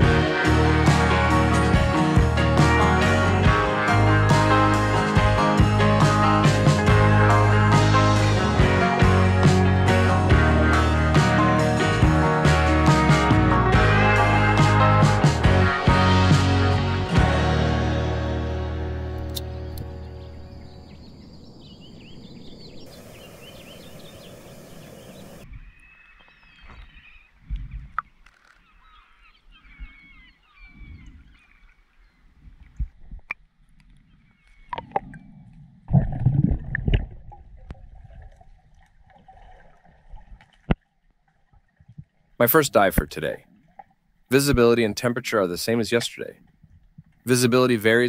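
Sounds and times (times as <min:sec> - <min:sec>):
music: 0:00.0 - 0:20.7, 0:47.3 - 0:48.0
water noise: 0:00.0 - 0:48.0
birds calling: 0:19.3 - 0:32.4, 0:33.9 - 0:34.9
steady hiss: 0:22.9 - 0:25.4
water splashing: 0:31.0 - 0:47.5.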